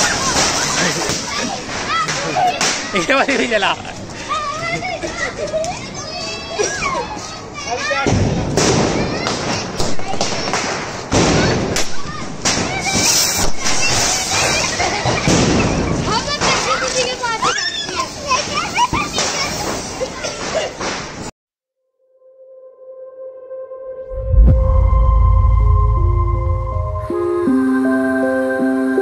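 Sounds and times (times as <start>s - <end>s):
children shouting: 0.0s - 3.0s, 4.2s - 8.1s, 11.4s - 20.7s
firecracker fizzing and sparking: 0.0s - 4.1s, 8.2s - 21.3s
firecracker bangs: 8.0s - 16.7s.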